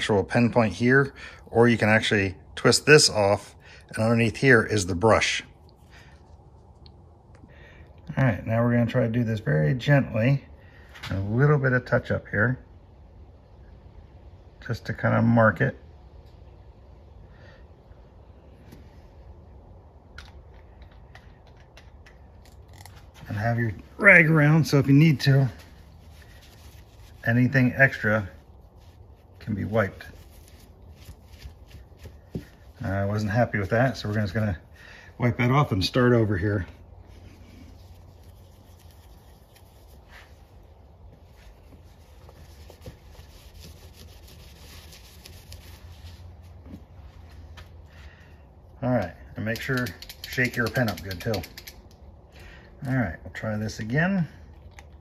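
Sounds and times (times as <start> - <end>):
low steady hum: 0.0 - 49.7
cloth rubbing on car panel: 37.7 - 47.0.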